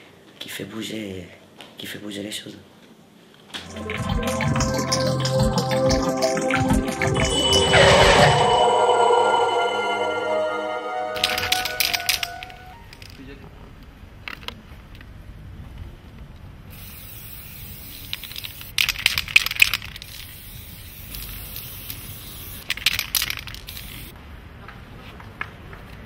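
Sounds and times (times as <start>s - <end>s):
aerosol spray can hissing: 16.8s - 18.8s, 19.9s - 24.1s.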